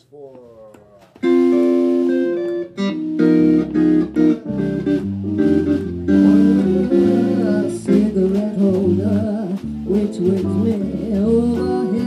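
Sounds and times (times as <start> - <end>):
jazz combo chords: 1.2 - 12.0.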